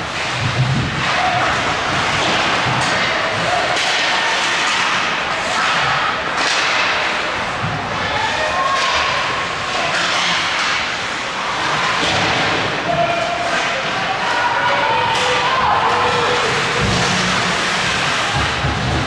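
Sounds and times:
hockey sticks striking puck: 0:00.0 - 0:19.0
people shouting: 0:08.0 - 0:10.2, 0:12.7 - 0:19.0
skate blades scraping ice: 0:15.7 - 0:19.0.

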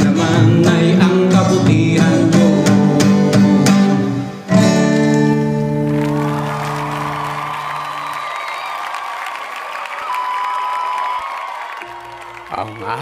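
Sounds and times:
acoustic guitar chord ringing: 0:00.1 - 0:08.1
crowd applauding and cheering: 0:04.8 - 0:13.0.

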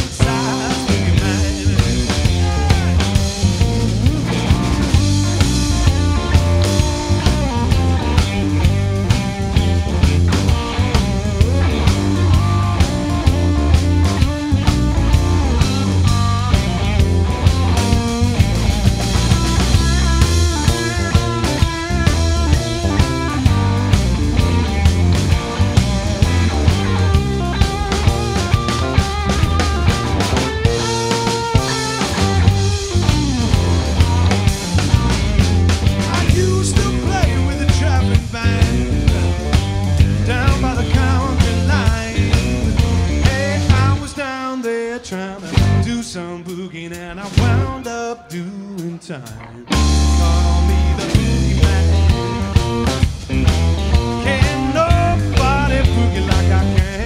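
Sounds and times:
bass guitar: 0:00.0 - 0:57.0
drum kit steady beat: 0:00.0 - 0:57.0
electric guitar lead lines: 0:00.0 - 0:57.0.

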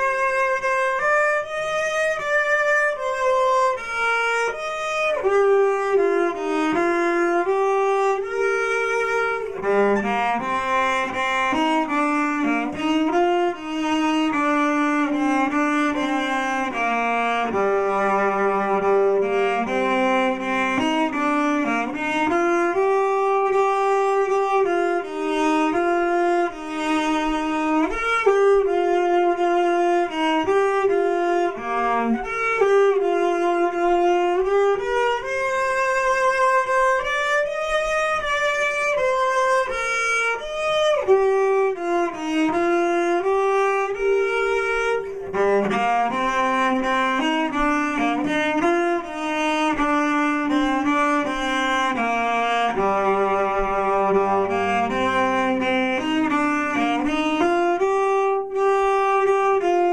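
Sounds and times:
bowed string instrument melody: 0:00.0 - 0:59.9.

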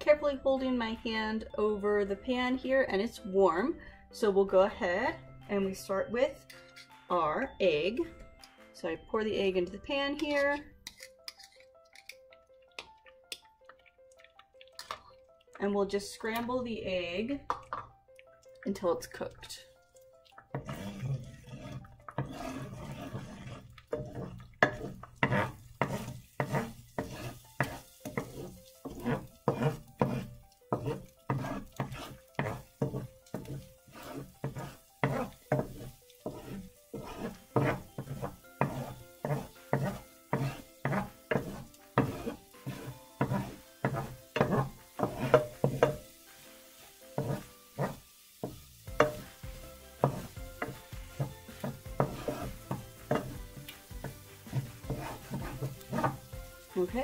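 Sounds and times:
egg sizzling in oil: 0:10.2 - 0:16.6, 0:17.5 - 0:57.0
wooden spoon scraping skillet: 0:20.3 - 0:57.0.

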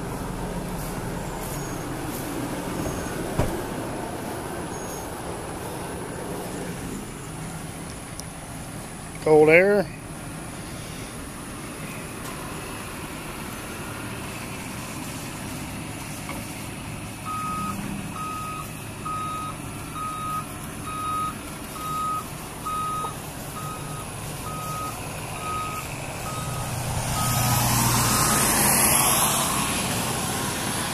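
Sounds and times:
vehicle reversing alarm beeping: 0:00.0 - 0:05.2, 0:17.2 - 0:28.5.

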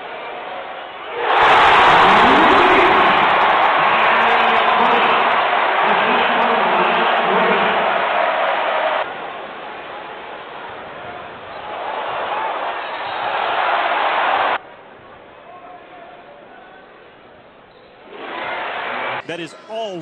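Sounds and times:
crowd cheering and clapping: 0:00.0 - 0:14.6, 0:18.2 - 0:20.0.

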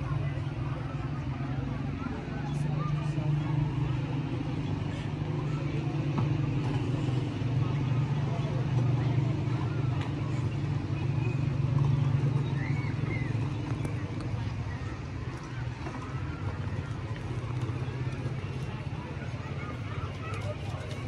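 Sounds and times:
faint voices: 0:00.0 - 0:21.0
low motor hum: 0:00.0 - 0:21.0.

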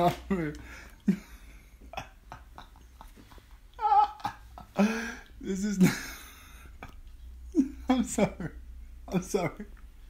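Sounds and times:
man talking: 0:00.0 - 0:00.7, 0:05.4 - 0:06.2, 0:07.6 - 0:09.8
man's high-pitched laughter: 0:01.8 - 0:06.4.

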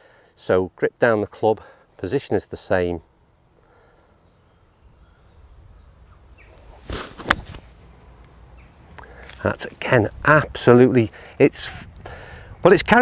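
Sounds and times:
golf club swish: 0:06.5 - 0:07.8
club striking sand: 0:06.8 - 0:07.7.

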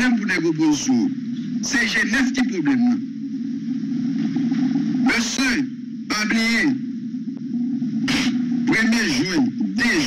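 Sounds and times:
low droning hum: 0:00.0 - 0:10.0.

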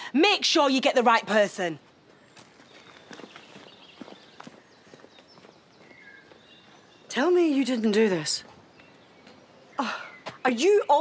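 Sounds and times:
faint bird chirps: 0:02.1 - 0:11.0.

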